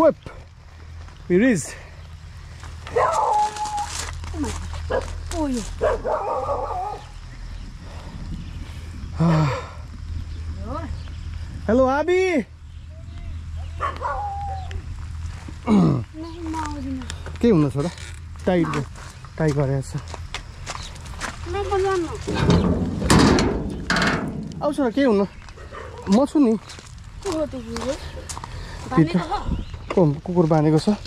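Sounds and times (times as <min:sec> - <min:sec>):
dog whining: 0:13.6 - 0:14.8
metal gate clicking and knocking: 0:22.4 - 0:24.7.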